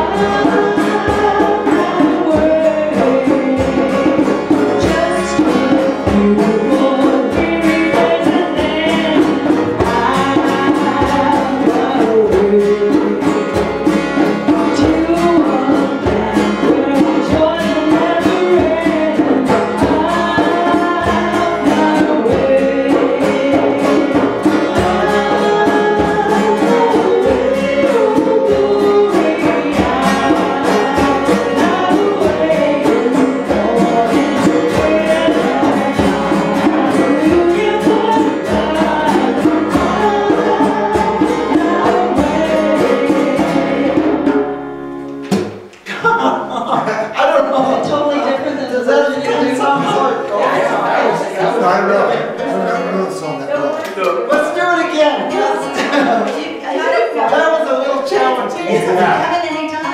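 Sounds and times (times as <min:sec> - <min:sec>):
voices singing: 0:00.0 - 0:44.7, 0:45.8 - 0:59.9
steady percussion beat: 0:00.0 - 0:52.7, 0:54.0 - 0:59.9
strummed acoustic guitar: 0:00.0 - 0:59.9.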